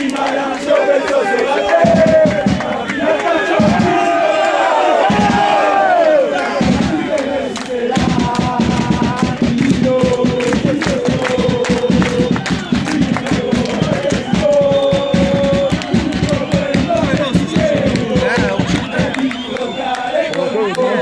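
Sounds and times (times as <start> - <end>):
crowd clapping: 0.0 - 21.0
crowd noise: 0.0 - 21.0
crowd singing a chant: 0.0 - 21.0.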